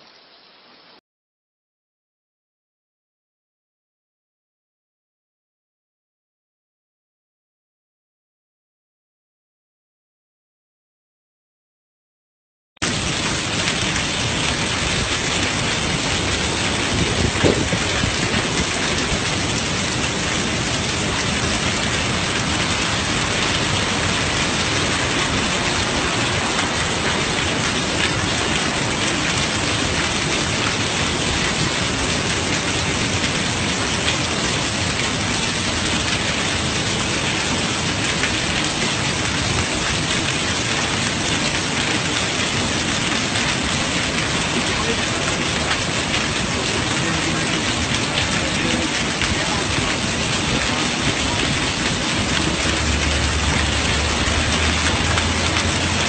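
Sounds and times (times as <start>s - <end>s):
heavy rain pouring: 12.8s - 56.0s.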